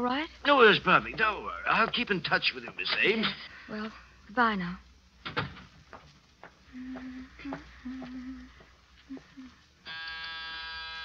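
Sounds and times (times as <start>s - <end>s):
door buzzer: 9.9s - 11.0s.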